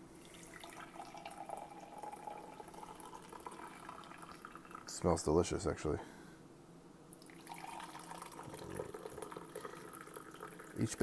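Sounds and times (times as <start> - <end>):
coffee pouring into a mug: 0.2 - 5.0, 7.2 - 11.0.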